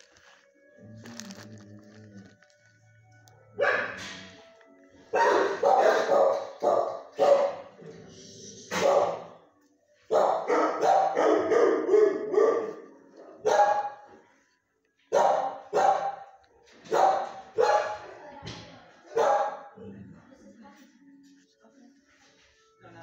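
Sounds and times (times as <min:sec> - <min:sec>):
dog barking: 0:03.6 - 0:04.2, 0:05.1 - 0:07.8, 0:08.7 - 0:09.4, 0:10.1 - 0:14.1, 0:15.1 - 0:18.1, 0:19.1 - 0:19.8.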